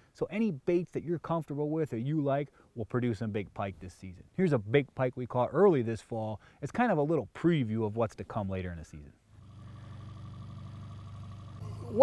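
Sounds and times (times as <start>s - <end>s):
boat motor humming: 9.4s - 12.0s.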